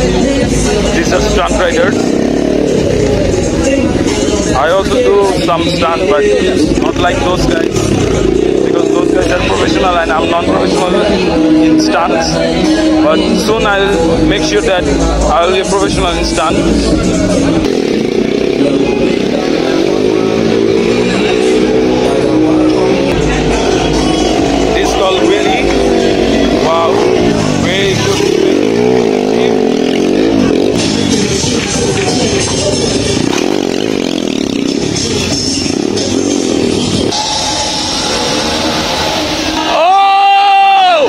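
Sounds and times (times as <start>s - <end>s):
loud music from sound system: 0.0s - 41.0s
motorcycle engines droning: 0.0s - 41.0s
steady held tone: 33.0s - 40.7s.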